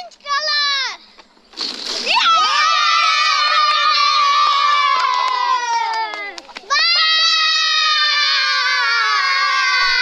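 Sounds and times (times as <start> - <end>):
children shouting and cheering: 2.1 - 10.0.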